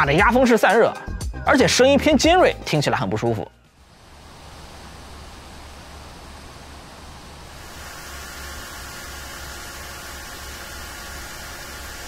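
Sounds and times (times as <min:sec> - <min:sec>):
laptop cooling fans whooshing: 0:03.7 - 0:12.0
low hum: 0:03.7 - 0:12.0.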